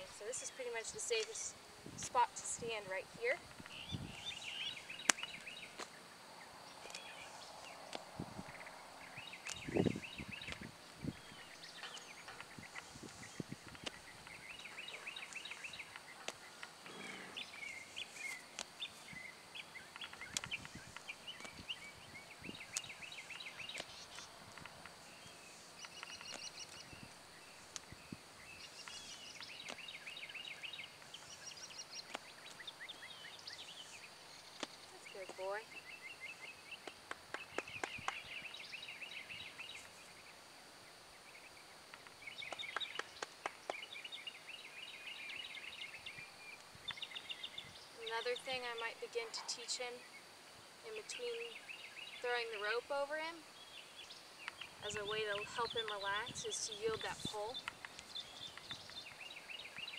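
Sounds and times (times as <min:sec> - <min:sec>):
songbirds singing: 0:00.0 - 0:59.9.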